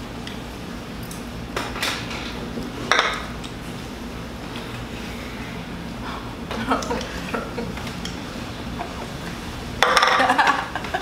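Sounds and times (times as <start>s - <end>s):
tableware clinking and scraping: 9.8s - 10.3s.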